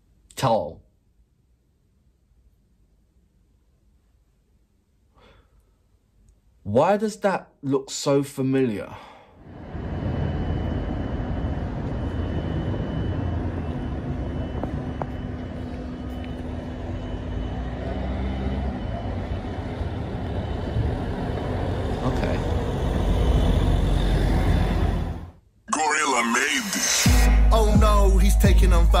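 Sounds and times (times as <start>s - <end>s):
rumble of passing vehicles: 9.4s - 25.4s.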